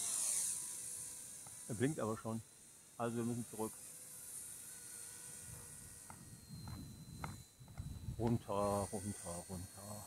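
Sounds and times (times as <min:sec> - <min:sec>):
model helicopter motor whine: 0:00.0 - 0:10.0.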